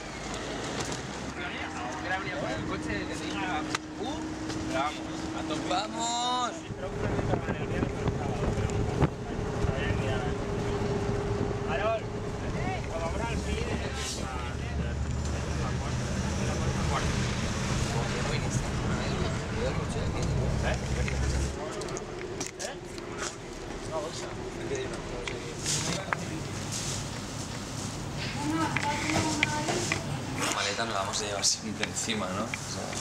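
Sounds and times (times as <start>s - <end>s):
minibus engine humming: 0.0s - 33.0s
indistinct voices: 28.2s - 33.0s.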